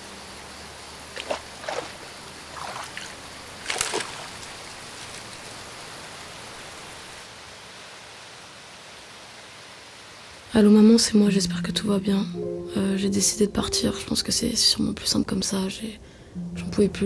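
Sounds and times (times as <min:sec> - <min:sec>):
river water flowing: 0:00.7 - 0:07.2
hands splashing in water: 0:01.2 - 0:04.5.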